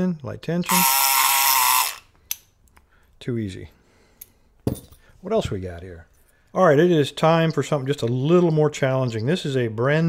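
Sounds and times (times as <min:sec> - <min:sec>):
electric pick gun buzzing: 0:00.7 - 0:02.1.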